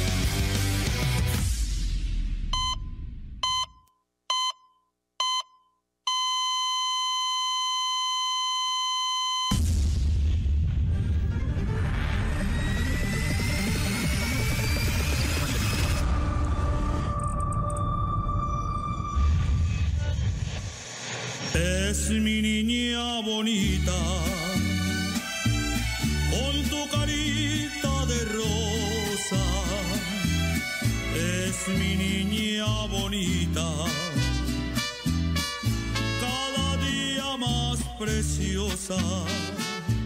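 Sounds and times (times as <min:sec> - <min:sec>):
music: 0:00.0 - 0:02.6, 0:09.8 - 0:40.0
heart monitor beeps: 0:02.5 - 0:09.6
whooshing rush sound effect: 0:18.0 - 0:21.9
person singing a ballad: 0:21.6 - 0:25.4, 0:26.1 - 0:34.4, 0:36.1 - 0:40.0.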